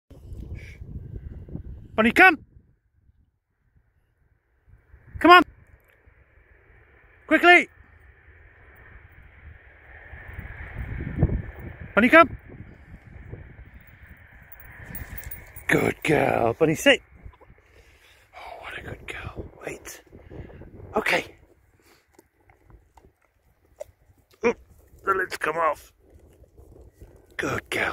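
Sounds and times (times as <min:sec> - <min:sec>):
wind rumbling on microphone: 0:00.1 - 0:27.9.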